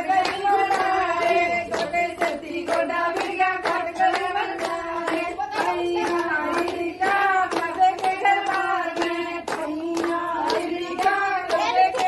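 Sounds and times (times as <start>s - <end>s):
hands clapping in rhythm: 0.0s - 12.0s
women singing in unison: 0.0s - 12.0s.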